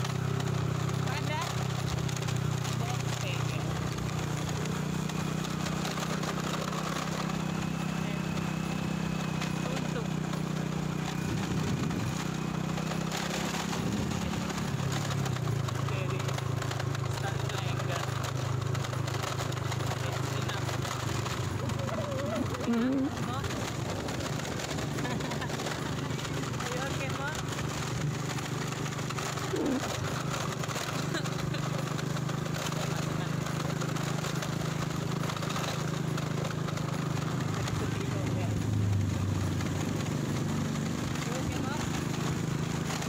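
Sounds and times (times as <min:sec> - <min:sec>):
motorcycle engine running: 0:00.0 - 0:43.0.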